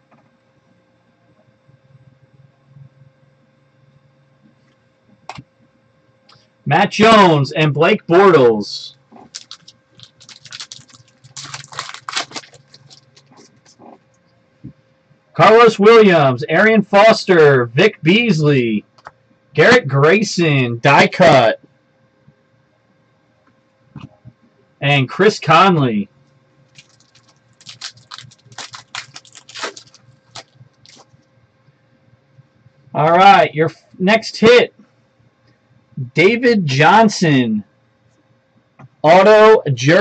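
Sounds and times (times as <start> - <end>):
faint steady hum: 0.0 - 40.0
cards shuffled by hand: 9.2 - 14.0, 26.8 - 31.1
wrappers crinkling: 9.2 - 14.0, 26.7 - 31.1.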